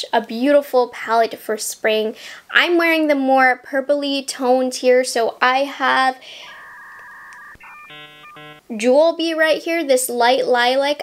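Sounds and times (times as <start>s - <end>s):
short electronic notes: 6.3s - 8.6s
two-pitch electronic beep: 6.4s - 8.6s.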